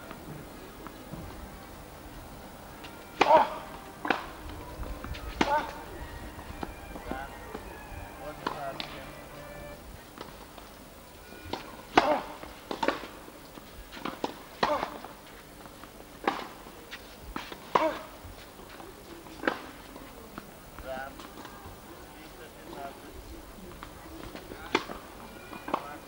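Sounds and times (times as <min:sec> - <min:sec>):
tennis ball hits: 0:03.1 - 0:09.7.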